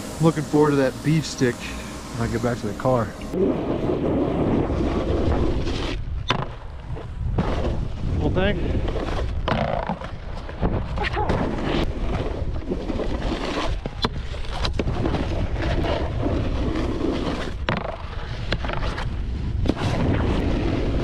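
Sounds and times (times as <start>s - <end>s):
snowboard scraping on snow: 0.0s - 6.2s, 6.8s - 9.4s, 10.0s - 21.0s
wind buffeting microphone: 3.4s - 9.5s.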